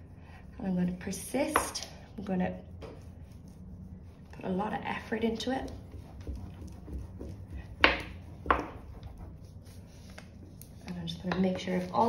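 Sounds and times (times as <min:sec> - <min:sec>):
spoon rubbing over paper: 0:00.0 - 0:12.0.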